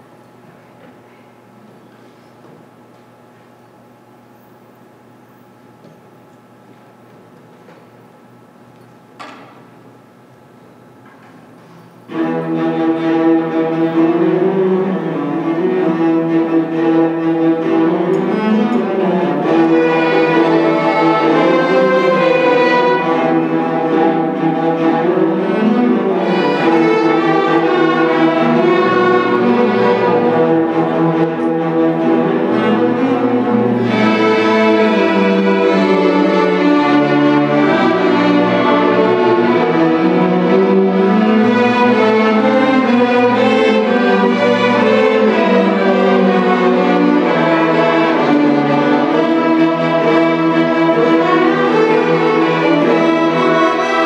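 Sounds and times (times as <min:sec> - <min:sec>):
string orchestra playing: 0:12.1 - 0:54.0.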